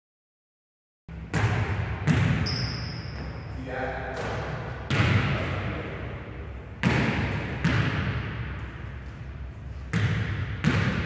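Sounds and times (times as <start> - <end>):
basketball bouncing on hardwood floor: 1.3 - 3.3, 4.2 - 5.3, 6.8 - 8.3, 9.9 - 11.0.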